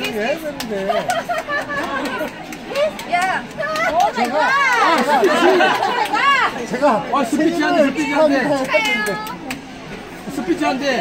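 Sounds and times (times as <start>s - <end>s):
excited voices talking and laughing: 0.0s - 9.8s.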